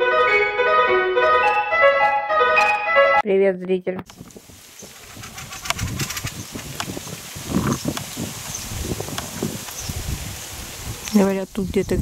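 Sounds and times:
birds chattering calls: 0:04.2 - 0:12.0.

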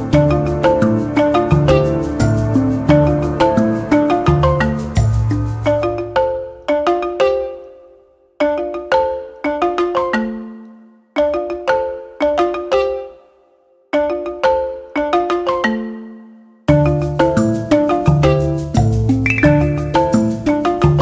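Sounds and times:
mallet percussion melody: 0:00.0 - 0:21.0.

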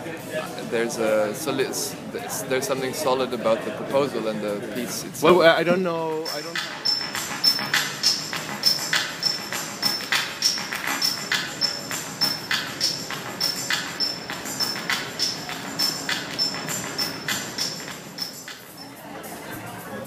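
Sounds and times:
jingling percussion strikes: 0:06.2 - 0:19.0.

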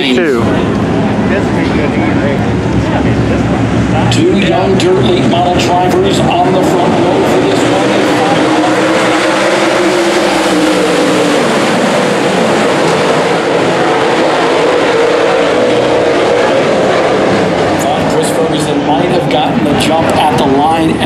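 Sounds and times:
race car engines droning: 0:00.0 - 0:21.0.

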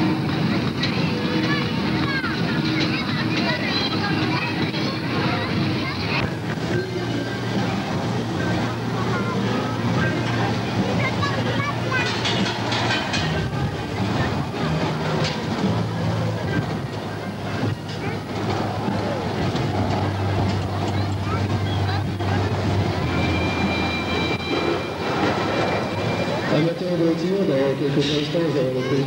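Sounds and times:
roller coaster rumbling on track: 0:00.0 - 0:29.0
high steady tone: 0:21.5 - 0:27.3.

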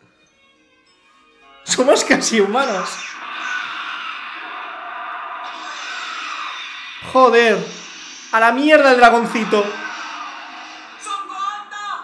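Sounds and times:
explosion noisy rush: 0:03.0 - 0:11.7.

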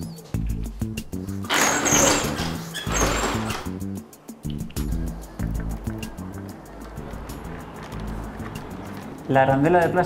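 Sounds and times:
background music with steady beat: 0:00.0 - 0:10.0
thin high squeals: 0:01.5 - 0:03.7
roller shutter rattling down: 0:01.5 - 0:03.8.

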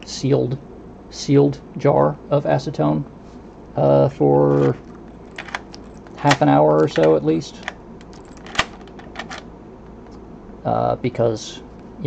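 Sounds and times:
key clicking out of lock: 0:05.3 - 0:09.4.

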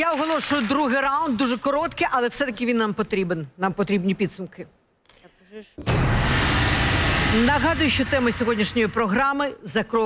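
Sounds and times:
loud rumbling boom: 0:05.8 - 0:09.6.

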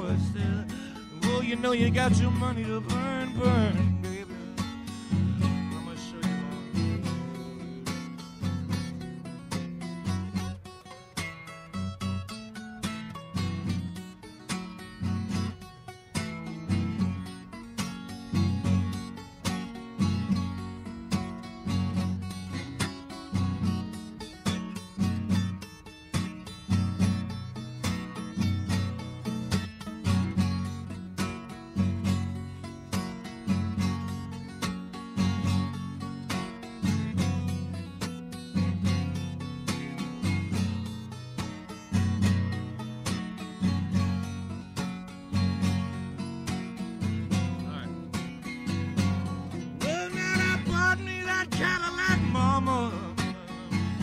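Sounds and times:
solo acoustic guitar: 0:00.0 - 0:54.0.

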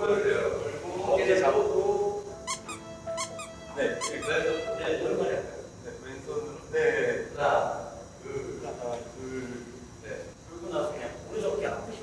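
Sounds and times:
shoe soles squeaking on floor: 0:02.4 - 0:04.7.

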